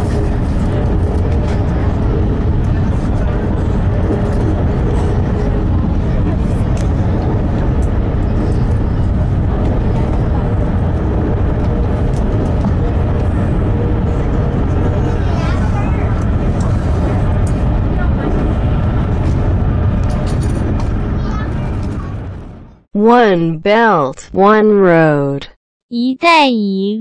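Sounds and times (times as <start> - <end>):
electric train rumbling: 0.0 - 22.9.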